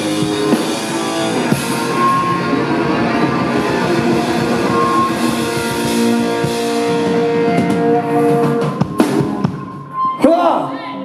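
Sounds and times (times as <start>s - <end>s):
punk rock band playing: 0.0s - 10.2s.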